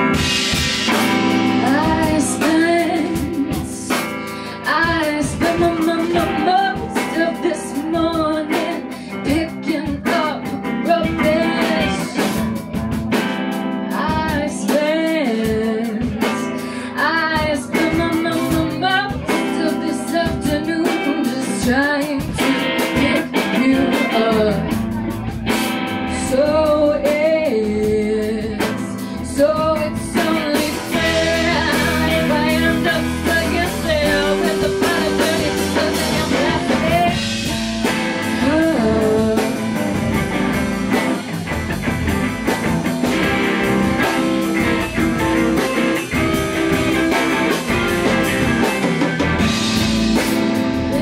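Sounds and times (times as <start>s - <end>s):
woman singing: 0.0s - 41.2s, 49.4s - 51.0s
bass guitar: 0.0s - 51.0s
drum kit: 0.0s - 51.0s
electric guitars: 0.0s - 51.0s.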